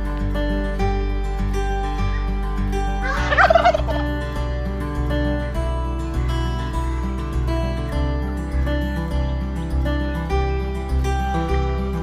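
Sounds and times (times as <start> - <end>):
background music: 0.0 - 12.0
turkey gobbling: 3.0 - 4.0.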